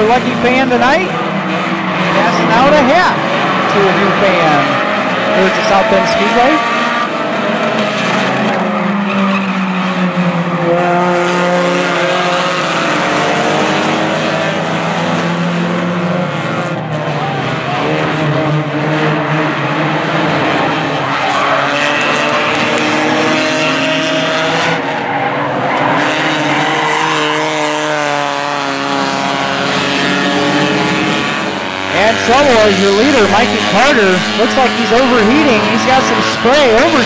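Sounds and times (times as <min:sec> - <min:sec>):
race car engines passing: 0:00.0 - 0:37.0.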